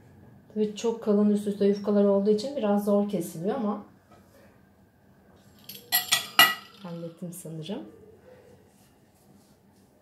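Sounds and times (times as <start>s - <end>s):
metal clinking on glass: 5.6s - 6.9s.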